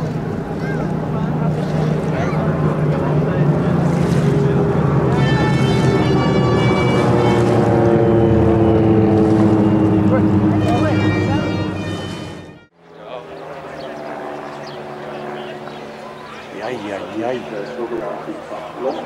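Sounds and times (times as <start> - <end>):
high engine whine: 0.0 - 19.0
propeller aircraft engine droning: 0.0 - 19.0.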